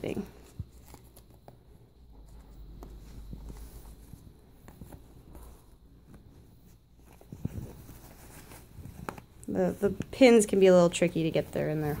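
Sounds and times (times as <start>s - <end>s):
satin rustling: 0.0s - 12.0s.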